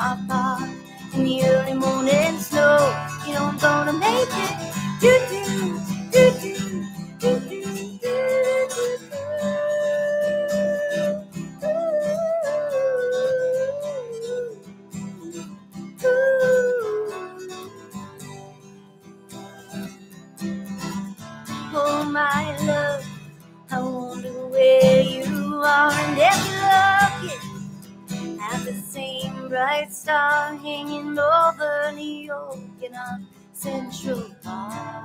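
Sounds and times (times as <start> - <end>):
woman singing wordless notes: 0.0 - 14.6, 16.0 - 18.2, 21.7 - 27.5, 28.4 - 35.0
strummed acoustic guitar: 0.0 - 35.0.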